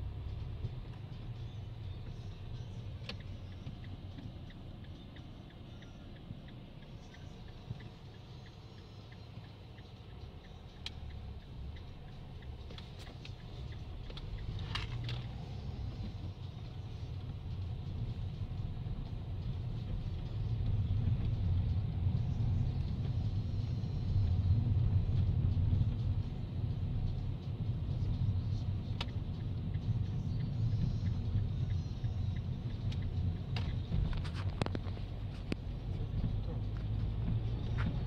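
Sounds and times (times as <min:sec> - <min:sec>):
car engine and tyre rumble: 0:00.0 - 0:38.0.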